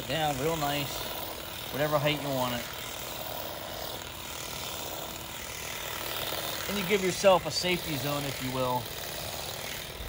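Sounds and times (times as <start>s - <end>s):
battery grass shear cutting grass: 0.0s - 10.0s.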